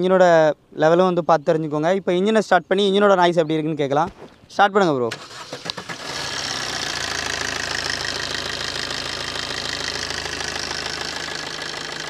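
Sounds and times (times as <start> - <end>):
diesel engine starting and idling: 5.1 - 12.0.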